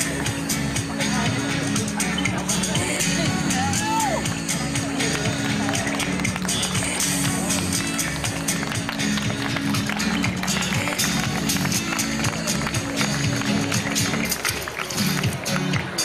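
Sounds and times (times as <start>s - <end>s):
bass notes: 0.0s - 14.4s.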